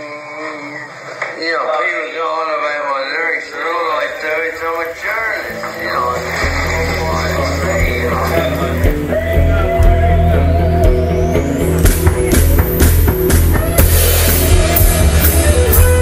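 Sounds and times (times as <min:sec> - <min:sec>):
rising sweep: 0:04.8 - 0:16.0
drum and cymbal hits: 0:05.6 - 0:16.0
heavy bass line: 0:05.6 - 0:16.0.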